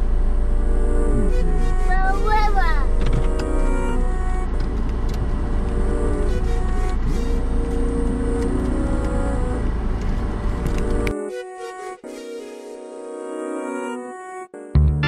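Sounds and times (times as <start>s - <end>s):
music playing: 0.0s - 9.7s, 10.6s - 15.0s.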